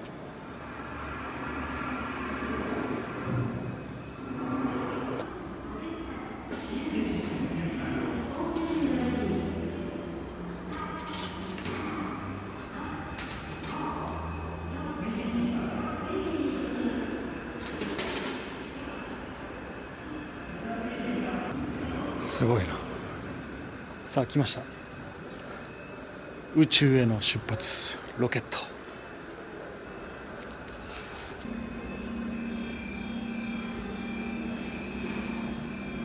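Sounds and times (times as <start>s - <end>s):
exhibition hall background hum: 0.0s - 36.0s
steady engine whine: 0.0s - 36.0s.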